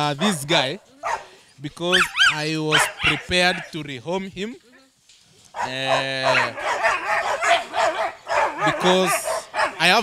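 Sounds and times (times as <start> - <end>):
dogs barking: 0.0 - 3.8, 5.5 - 10.0.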